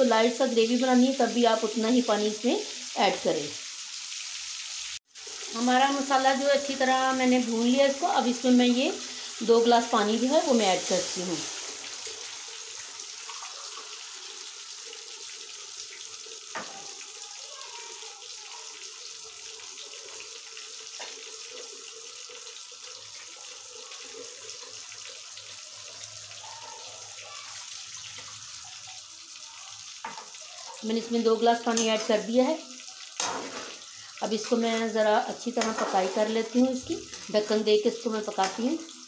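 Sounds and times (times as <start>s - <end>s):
water hissing in hot pan: 0.0s - 39.0s.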